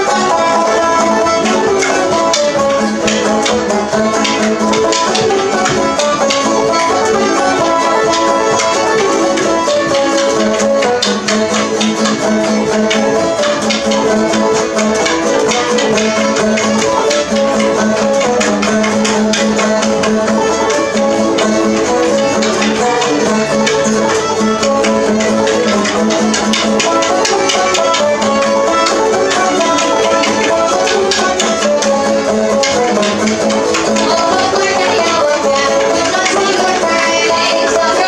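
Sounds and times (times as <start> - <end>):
banjo picking: 0.0 - 38.0
bowed fiddle: 0.0 - 38.0
plucked strings: 0.0 - 38.0.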